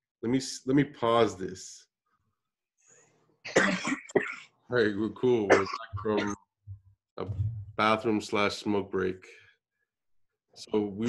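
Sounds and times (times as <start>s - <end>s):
person coughing: 3.5s - 4.4s, 5.5s - 6.4s.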